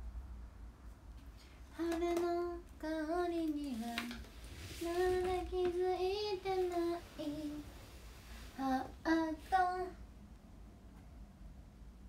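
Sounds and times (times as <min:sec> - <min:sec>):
woman singing unaccompanied: 0:01.7 - 0:07.8, 0:08.5 - 0:10.0.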